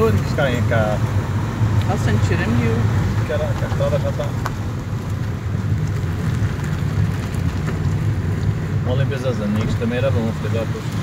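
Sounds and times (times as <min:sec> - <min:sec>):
off-road vehicle engine rumble: 0:00.0 - 0:11.0.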